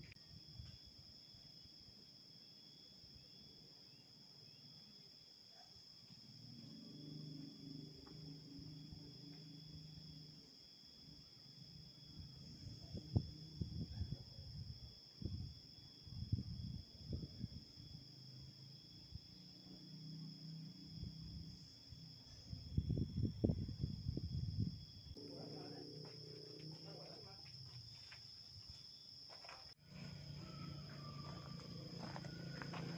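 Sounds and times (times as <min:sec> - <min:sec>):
insects trilling: 0:00.0 - 0:32.9.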